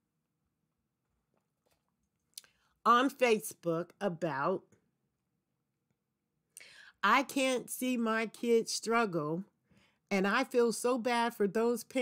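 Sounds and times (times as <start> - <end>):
woman inhaling: 6.6 - 7.0.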